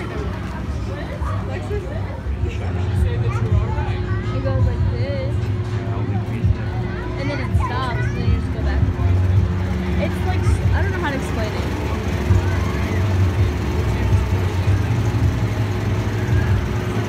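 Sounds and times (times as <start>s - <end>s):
engine running low rumble: 0.0s - 17.0s
faint voices: 0.0s - 17.0s.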